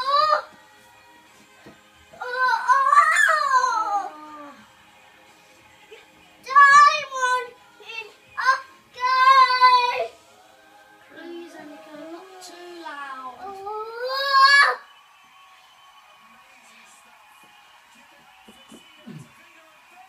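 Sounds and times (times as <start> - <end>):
toddler singing: 0.0 - 0.6, 2.1 - 4.6, 6.4 - 10.2.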